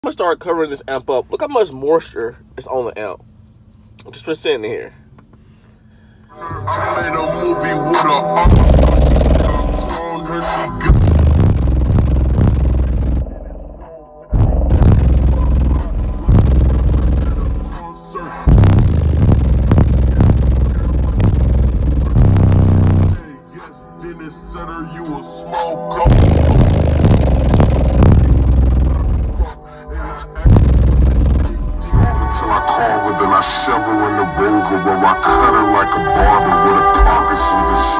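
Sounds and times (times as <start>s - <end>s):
rap vocals: 6.4s - 37.9s
deep bass hits: 8.5s - 10.0s, 10.9s - 13.4s, 14.4s - 17.8s, 18.5s - 23.2s, 26.1s - 29.6s, 30.4s - 32.7s.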